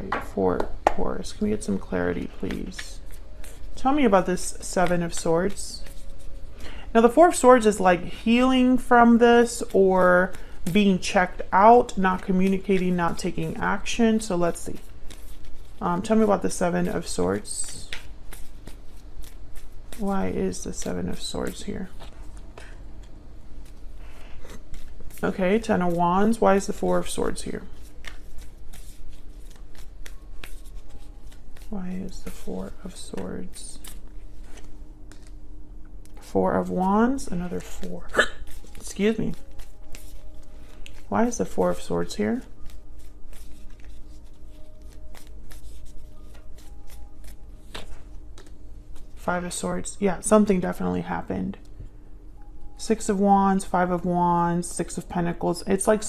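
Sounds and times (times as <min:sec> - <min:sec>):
cards being shuffled: 0:01.6 - 0:06.7, 0:09.0 - 0:35.4, 0:37.4 - 0:49.2.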